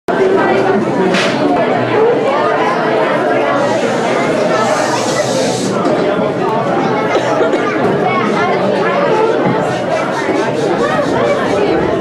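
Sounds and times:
many voices chattering in hall: 0.1s - 12.0s.

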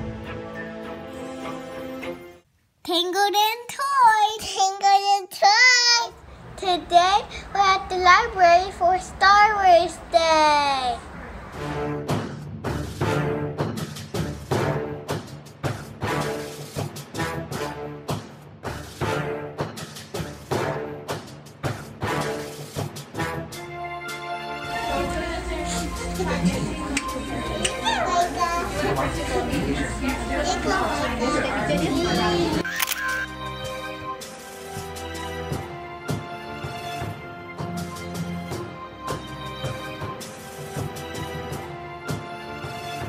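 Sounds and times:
children talking: 2.9s - 11.2s, 24.8s - 32.7s
camera shutter click: 32.6s - 33.3s.

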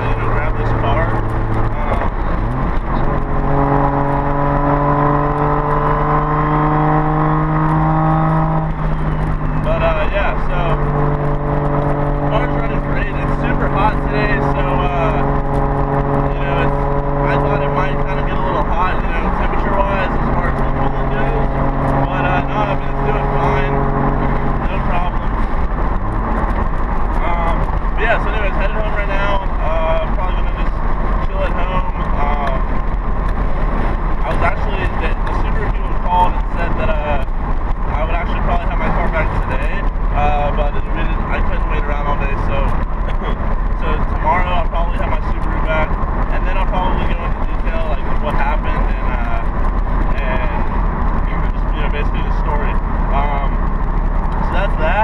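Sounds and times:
car engine from inside cabin: 0.0s - 55.0s
road noise: 0.0s - 55.0s.

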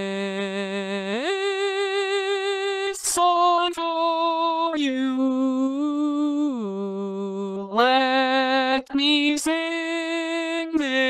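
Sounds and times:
synthesized voice singing: 0.0s - 11.0s.

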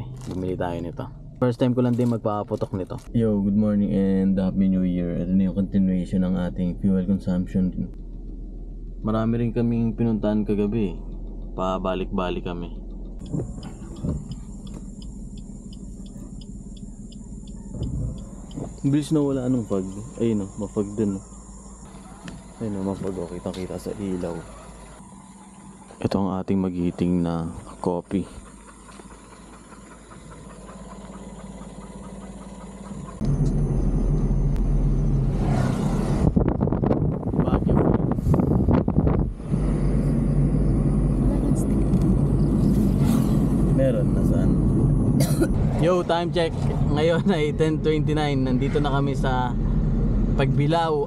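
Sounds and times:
car engine idling: 0.0s - 35.5s, 36.2s - 51.0s
car driving on road: 0.0s - 51.0s
insects droning and chirping: 11.8s - 37.2s, 37.8s - 51.0s
low rumble: 27.4s - 51.0s
wind buffeting microphone: 35.9s - 40.0s.

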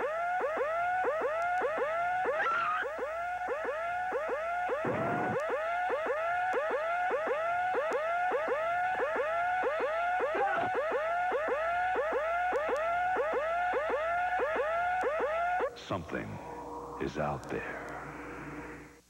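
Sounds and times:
short falling electronic sweep: 14.8s - 19.0s
electronic warbling tone: 15.3s - 19.0s.

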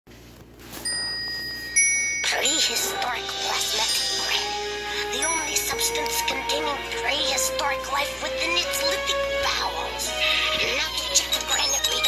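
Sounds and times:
electronic chime tones: 0.9s - 6.3s.

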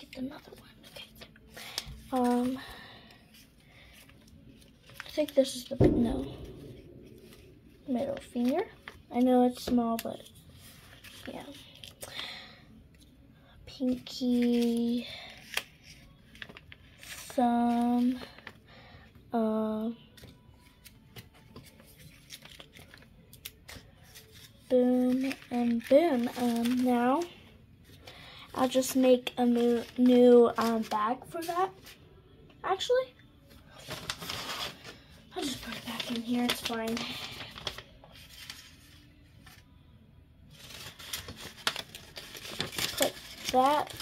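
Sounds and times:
paper crackling: 0.5s - 5.8s, 7.0s - 12.0s, 13.8s - 18.6s, 20.2s - 27.3s, 28.6s - 32.0s, 33.7s - 39.6s, 40.5s - 44.0s
paper rustling and clicking: 4.0s - 5.8s, 7.2s - 12.0s, 13.8s - 18.6s, 20.2s - 27.3s, 29.4s - 31.1s, 33.8s - 39.6s, 40.5s - 44.0s.

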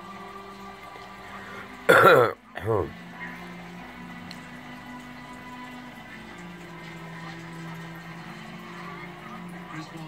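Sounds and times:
film soundtrack from television: 0.0s - 10.0s.

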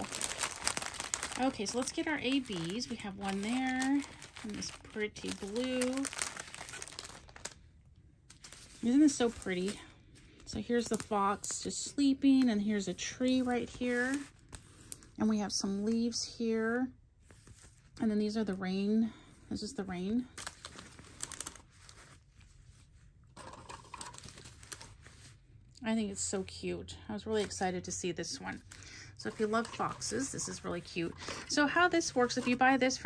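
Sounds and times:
plastic baggies crinkling: 0.0s - 7.6s, 8.3s - 11.8s, 20.2s - 22.5s, 23.3s - 25.4s, 28.4s - 33.0s.

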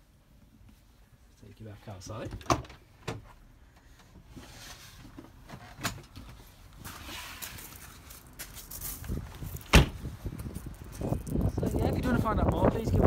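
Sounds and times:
handling noise: 5.0s - 12.4s
door being shut: 9.7s - 10.0s.

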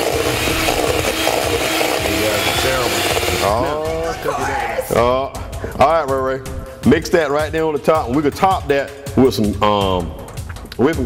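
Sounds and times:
beaters scraping metal bowl: 0.0s - 4.3s
electric hand mixer running: 0.0s - 4.5s.

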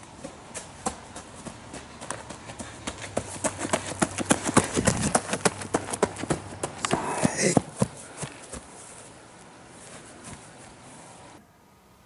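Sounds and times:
running footsteps on woodland floor: 0.0s - 10.8s.

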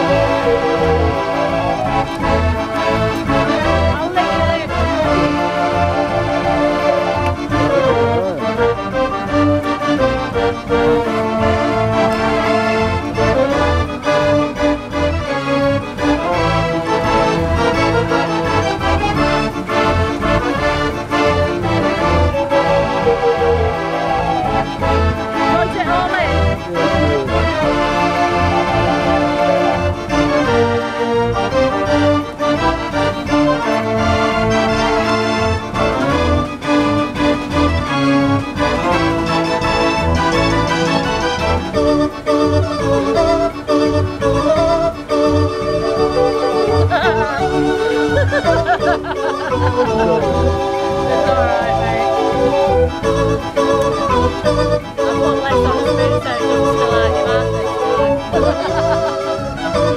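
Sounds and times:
dance organ playing a tune: 0.0s - 59.9s
steady bass beat: 46.9s - 52.8s.

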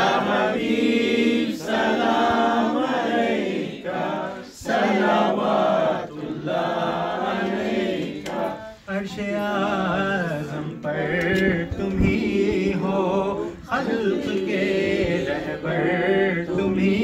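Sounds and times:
men chanting: 0.0s - 17.0s.

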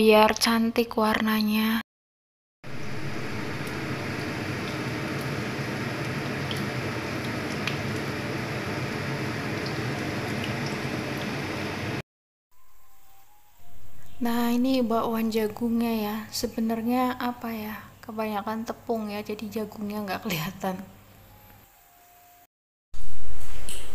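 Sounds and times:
oil sizzling with small pops: 2.8s - 12.0s.

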